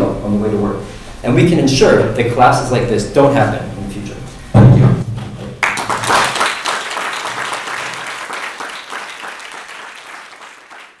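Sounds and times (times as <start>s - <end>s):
audience applause: 5.6s - 11.0s.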